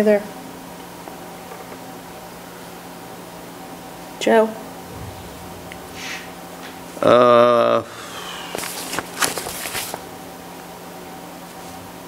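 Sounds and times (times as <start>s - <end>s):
rustling handling noise: 8.4s - 10.1s.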